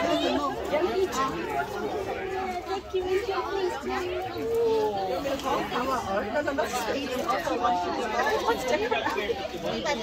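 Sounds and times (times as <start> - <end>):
children and adults chattering: 0.0 - 10.0.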